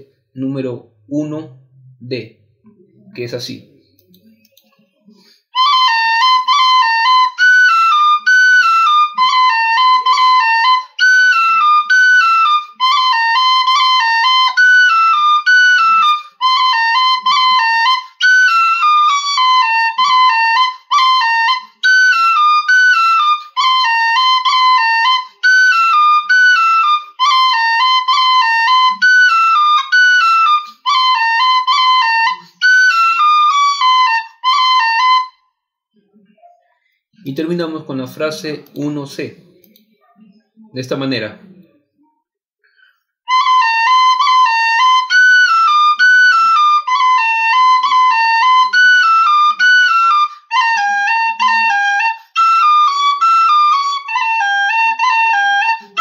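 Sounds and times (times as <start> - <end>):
tin whistle folk melody: 5.5 - 35.4, 43.2 - 56.0.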